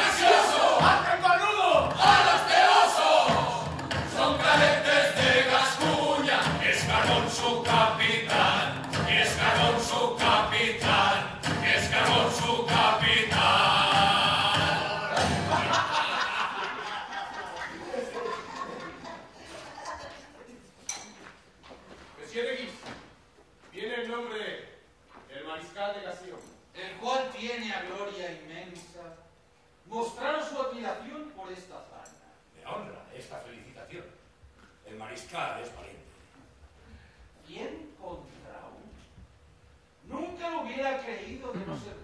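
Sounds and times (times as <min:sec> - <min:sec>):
men singing a chorus: 0:00.0 - 0:16.2.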